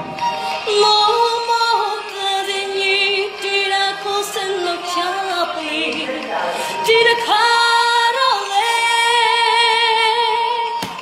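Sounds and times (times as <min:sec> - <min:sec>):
woman singing solo: 0:00.4 - 0:11.0.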